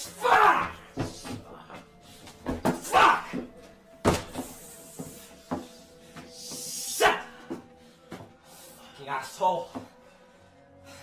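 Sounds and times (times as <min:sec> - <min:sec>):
faint music drone: 0:00.0 - 0:11.0.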